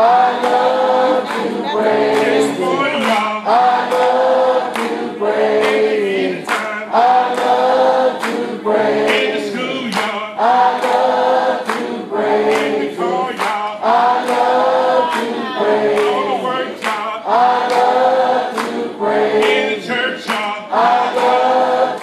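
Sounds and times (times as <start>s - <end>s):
choir singing gospel: 0.0s - 22.0s
man singing into a microphone: 1.1s - 3.8s.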